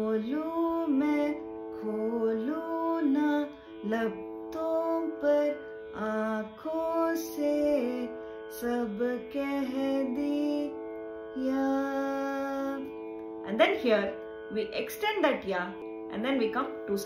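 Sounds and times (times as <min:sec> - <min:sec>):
shruti box drone: 0:00.0 - 0:17.0
woman singing: 0:00.0 - 0:17.0.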